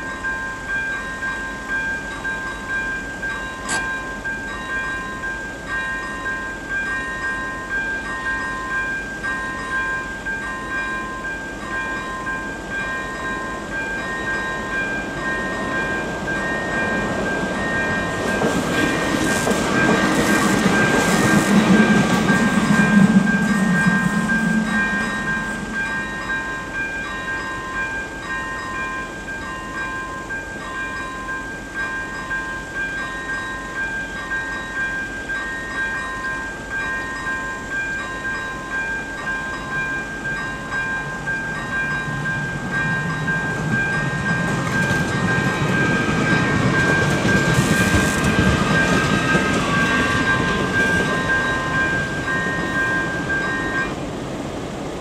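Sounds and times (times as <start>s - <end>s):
level crossing warning bells: 0.0s - 55.0s
train rumble: 0.0s - 55.0s.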